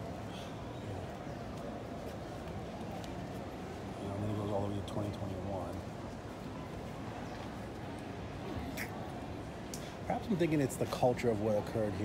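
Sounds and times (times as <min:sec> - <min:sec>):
city background hum: 0:00.0 - 0:12.0
faint distant voices: 0:00.0 - 0:12.0.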